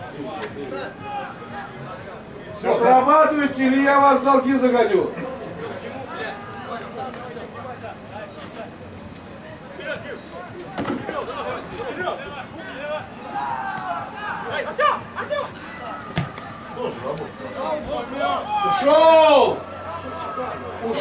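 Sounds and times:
faint high whine: 0:00.0 - 0:21.0
players calling and shouting: 0:00.0 - 0:21.0.

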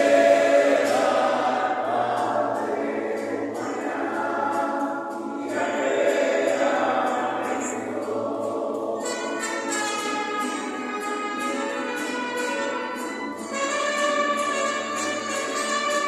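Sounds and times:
choir singing: 0:00.0 - 0:10.7.

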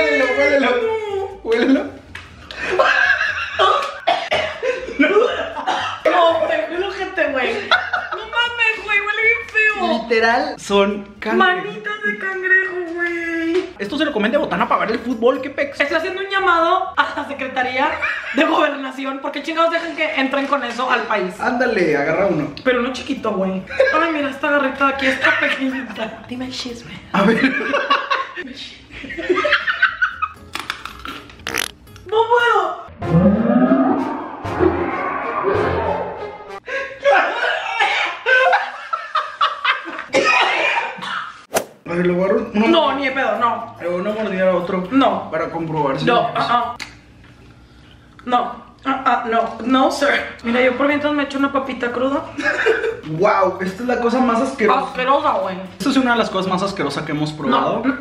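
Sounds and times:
loud laughter: 0:02.6 - 0:06.1, 0:35.8 - 0:41.4.

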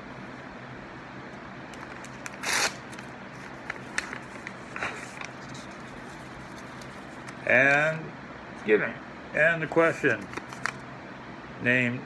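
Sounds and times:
steady low hum: 0:00.0 - 0:12.0
envelope paper rustling: 0:01.8 - 0:07.4, 0:10.1 - 0:10.8.

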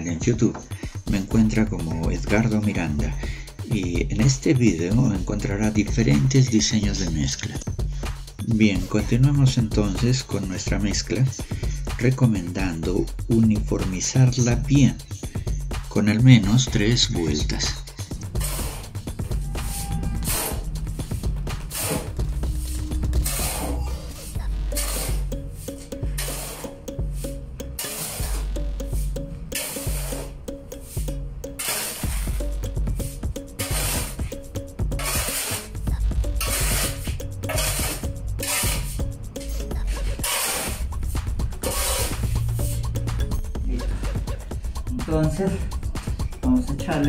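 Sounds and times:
background music with bass line: 0:00.0 - 0:47.0
shovel scraping concrete floor: 0:18.0 - 0:31.0, 0:31.6 - 0:42.8.

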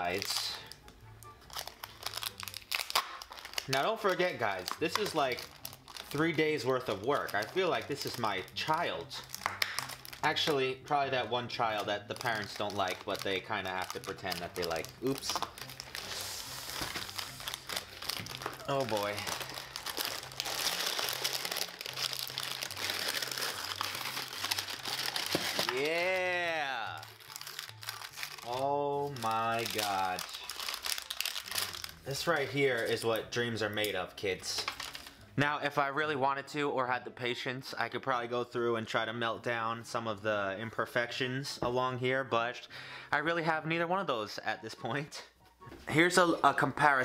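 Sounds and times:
paper and cardboard crinkling: 0:11.7 - 0:33.2.

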